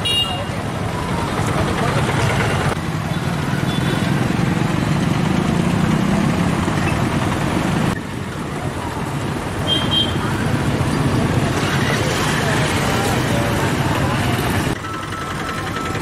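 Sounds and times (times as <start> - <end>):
rumble of passing vehicles: 0.0 - 16.0.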